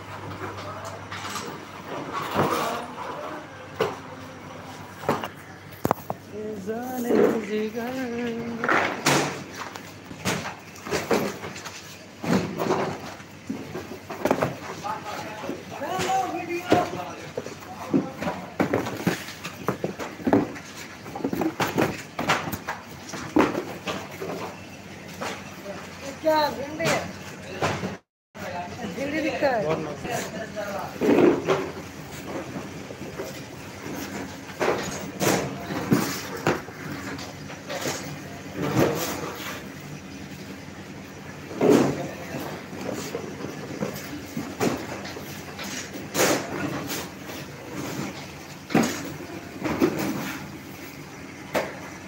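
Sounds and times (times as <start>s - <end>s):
okra pods and cartons handled: 0.2s - 28.0s, 29.6s - 39.8s, 41.4s - 52.0s.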